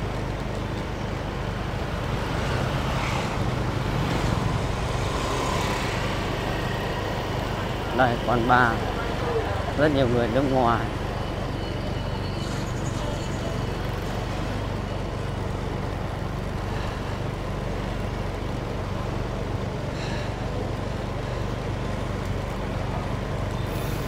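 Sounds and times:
motorbikes passing: 0.0s - 24.0s.

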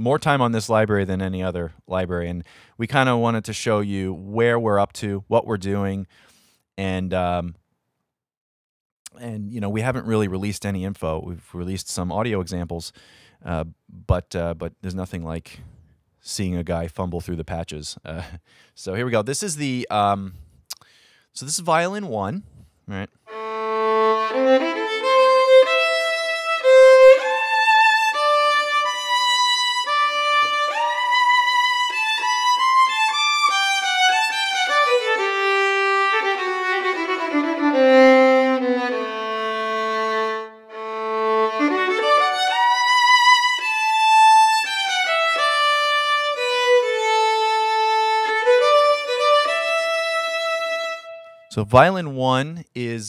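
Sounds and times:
solo violin melody with vibrato: 23.3s - 51.5s.

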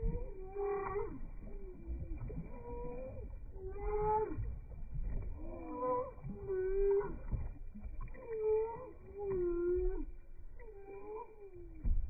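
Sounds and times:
slowed duckling calls: 0.0s - 7.4s.

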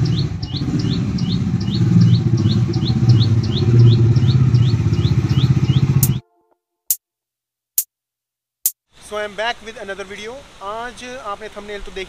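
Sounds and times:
motorcycle engine running: 0.0s - 6.2s
bird chirping: 0.0s - 6.3s.

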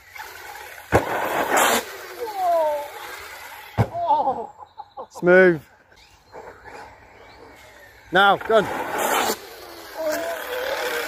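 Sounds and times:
electric motor whine: 5.9s - 11.0s
tyres hissing on dirt: 8.0s - 11.0s.

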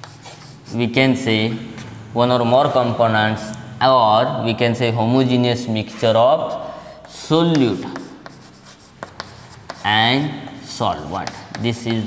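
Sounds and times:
chalk tapping: 0.0s - 0.8s, 7.0s - 12.0s
chalk scratching on blackboard: 0.0s - 0.9s, 7.0s - 12.0s.

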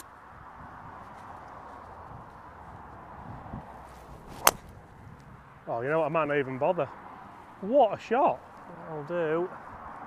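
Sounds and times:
golf driver striking ball: 4.3s - 4.7s.

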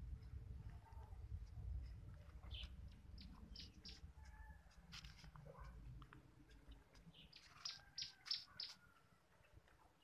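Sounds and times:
faint birds chirping: 2.0s - 4.6s, 5.5s - 10.0s.

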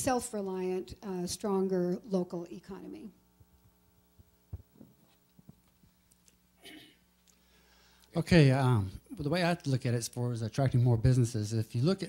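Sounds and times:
low electrical hum: 0.0s - 12.0s
microphone handling thumps: 3.4s - 5.6s.

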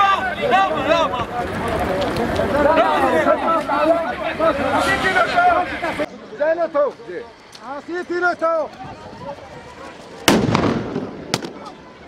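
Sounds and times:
stun grenade bang: 10.3s - 11.6s.

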